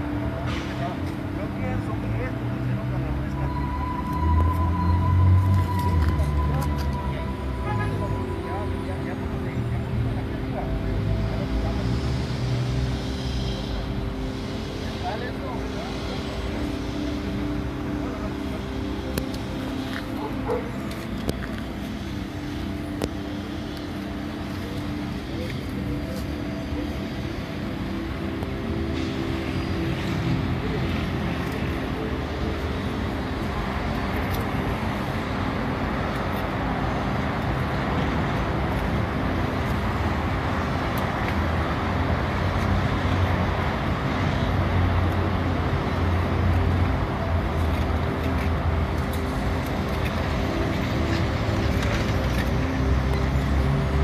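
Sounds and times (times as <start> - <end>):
traffic noise: 0.0 - 54.0
vehicle engine rumble: 0.0 - 54.0.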